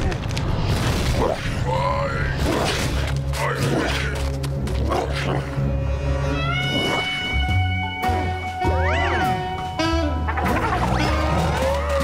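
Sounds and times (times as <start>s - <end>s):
cartoon music with bass notes: 6.3s - 12.0s
comic sound effects: 8.7s - 12.0s.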